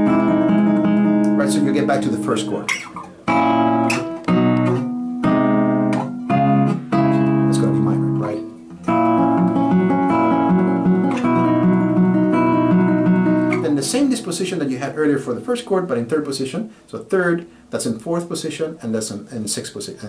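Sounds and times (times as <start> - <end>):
classical guitar playing chords: 0.0 - 16.1.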